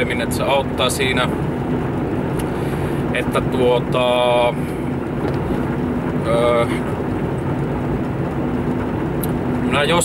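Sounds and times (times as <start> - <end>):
car engine hum: 0.0 - 10.0
road noise inside car: 0.0 - 10.0.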